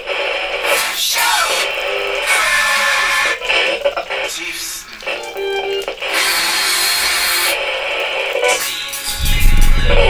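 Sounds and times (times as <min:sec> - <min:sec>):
static-like noise burst: 0:00.0 - 0:04.9, 0:09.1 - 0:10.0.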